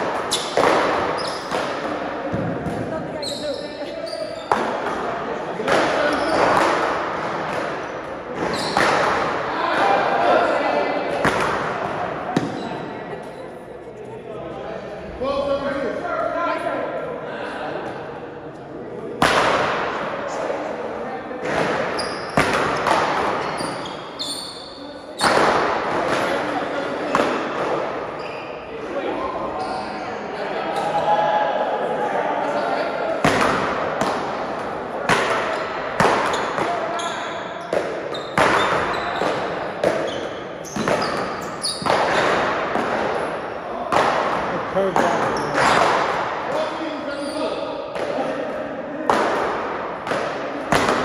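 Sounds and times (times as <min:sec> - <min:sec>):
ball hitting wall and floor: 0:00.0 - 0:03.1, 0:04.3 - 0:09.9, 0:11.1 - 0:12.9, 0:21.4 - 0:24.0, 0:25.2 - 0:28.0, 0:33.2 - 0:46.7, 0:49.1 - 0:51.0.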